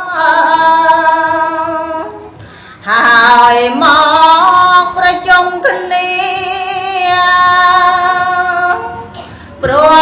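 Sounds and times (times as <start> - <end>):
woman breathing: 2.4 - 2.8.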